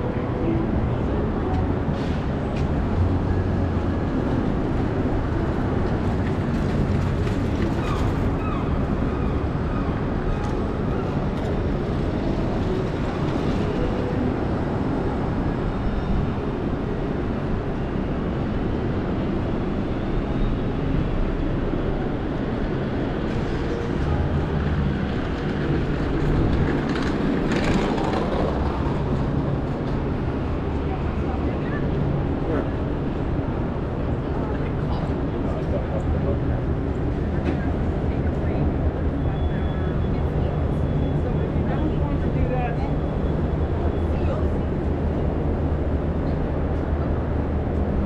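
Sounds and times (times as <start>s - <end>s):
city street traffic rumble: 0.0s - 48.0s.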